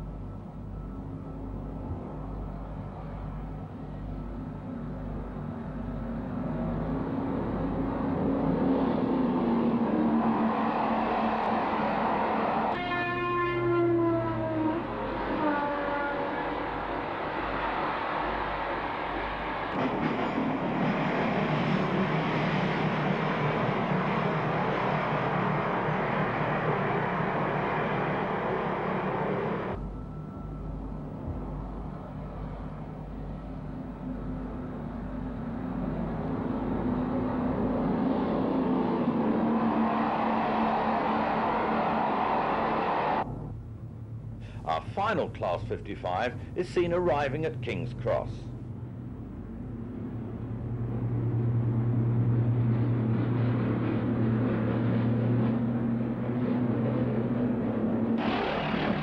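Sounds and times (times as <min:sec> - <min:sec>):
diesel trains passing at speed: 0:00.0 - 0:59.0.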